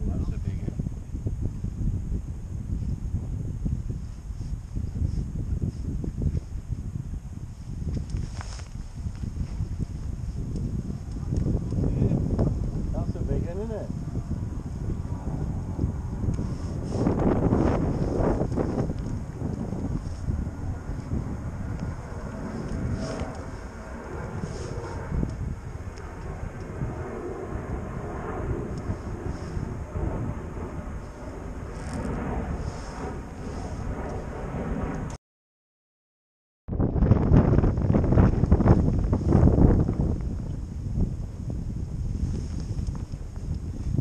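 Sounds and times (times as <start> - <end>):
wind buffeting microphone: 0.0 - 35.2, 36.7 - 44.0.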